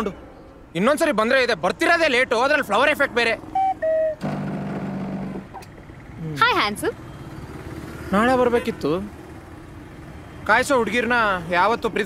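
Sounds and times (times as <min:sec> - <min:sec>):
scooter engine running: 0:03.5 - 0:10.3.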